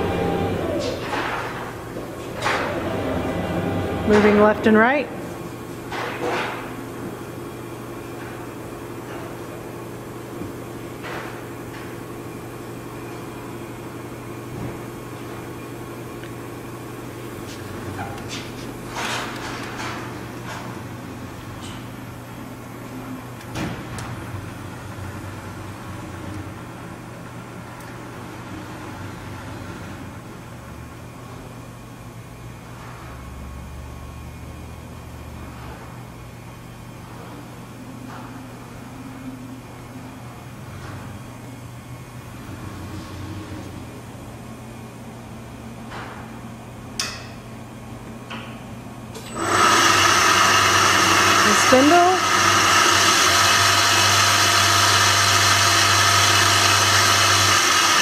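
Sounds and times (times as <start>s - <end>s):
machine humming: 0.0s - 5.2s, 49.2s - 58.0s.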